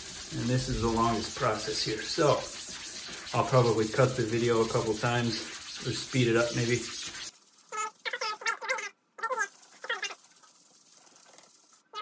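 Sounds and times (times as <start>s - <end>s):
rag squeaking on screen mesh: 4.4s - 12.0s.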